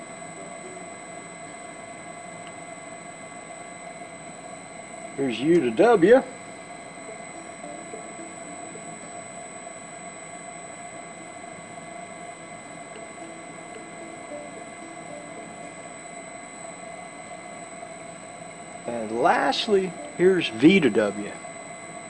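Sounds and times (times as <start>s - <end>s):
electric motor humming with high tones: 0.0s - 22.0s.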